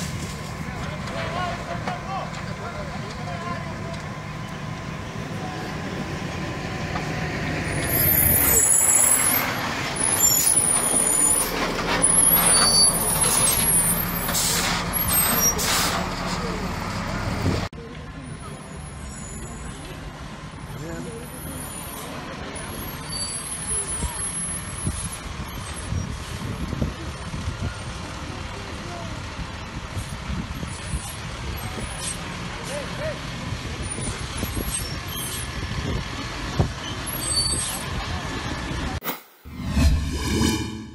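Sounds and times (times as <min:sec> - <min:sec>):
fire engines running: 0:00.0 - 0:39.0
low rumble: 0:39.5 - 0:40.9.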